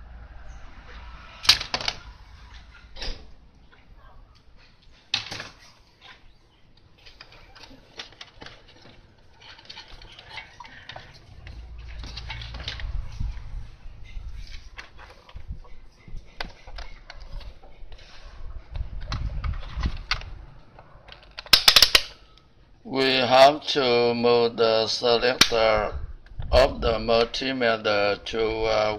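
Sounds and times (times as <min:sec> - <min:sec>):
low rumble: 0:00.0 - 0:04.0, 0:11.2 - 0:14.8
clattering: 0:01.4 - 0:02.2.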